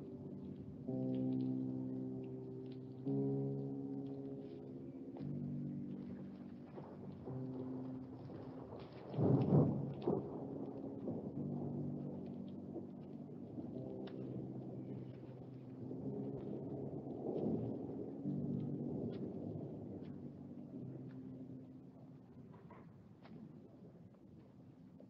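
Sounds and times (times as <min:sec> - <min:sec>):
rumble: 0:05.2 - 0:23.4.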